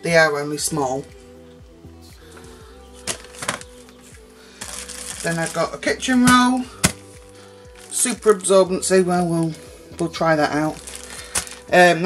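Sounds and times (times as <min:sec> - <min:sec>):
calm background music: 0:00.0 - 0:12.0
plastic packaging rustling: 0:03.0 - 0:03.8, 0:04.6 - 0:07.1, 0:07.7 - 0:08.6, 0:10.4 - 0:12.0.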